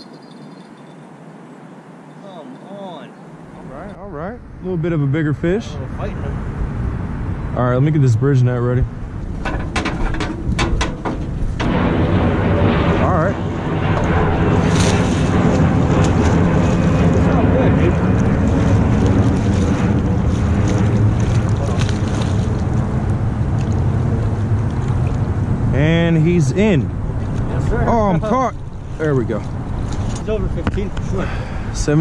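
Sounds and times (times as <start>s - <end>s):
steady engine drone: 2.3s - 32.0s
wind noise: 3.4s - 32.0s.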